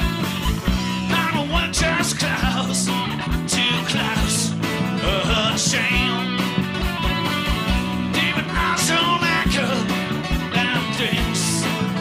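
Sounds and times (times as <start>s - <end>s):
rock band playing: 0.0s - 12.0s
lead vocal singing: 1.0s - 6.4s, 8.0s - 11.8s.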